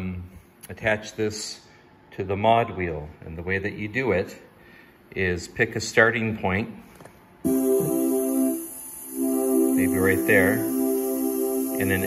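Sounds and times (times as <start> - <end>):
synthesizer sustained chord: 7.4 - 12.0.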